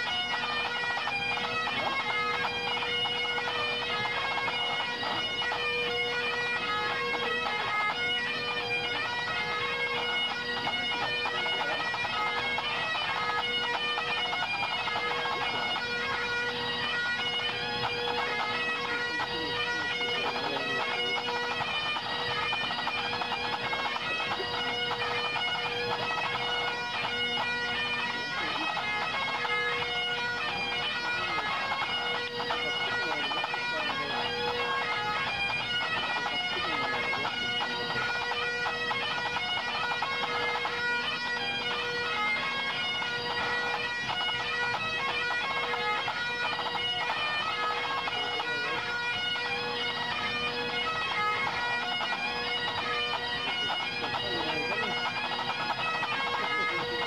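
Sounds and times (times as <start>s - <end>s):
bagpipes playing: 0.0s - 57.0s.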